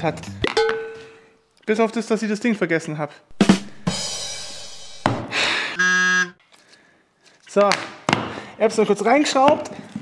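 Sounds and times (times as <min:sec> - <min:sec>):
cymbal crash: 0:03.3 - 0:05.4
drum hit: 0:03.3 - 0:05.4
buzzer-like horn tone: 0:05.8 - 0:06.4.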